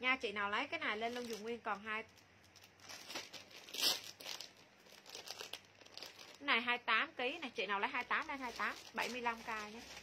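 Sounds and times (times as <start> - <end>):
plastic packaging crinkling: 0.8 - 10.0.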